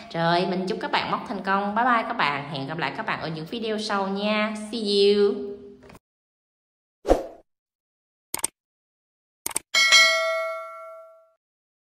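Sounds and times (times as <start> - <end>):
notification bell chime: 9.8 - 11.4.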